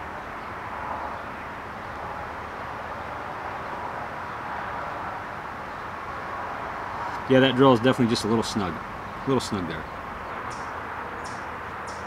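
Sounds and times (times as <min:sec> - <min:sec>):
distant outdoor ambience hum: 0:00.0 - 0:12.0.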